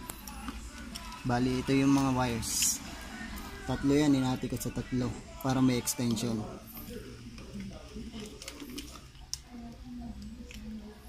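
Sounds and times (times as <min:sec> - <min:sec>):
faint background voices: 0:00.0 - 0:11.0
wires clicking and rustling: 0:00.0 - 0:11.0.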